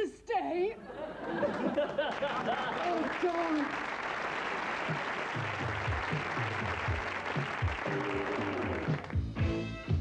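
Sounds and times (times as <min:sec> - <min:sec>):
audience applause: 0:01.5 - 0:09.2.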